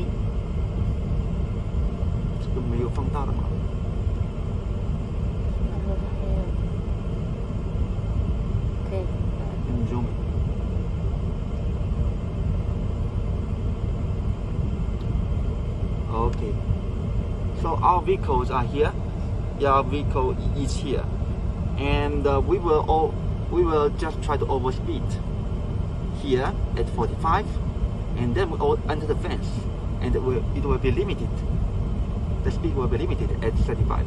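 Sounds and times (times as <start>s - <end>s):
low rumble inside car cabin: 0.0s - 34.0s.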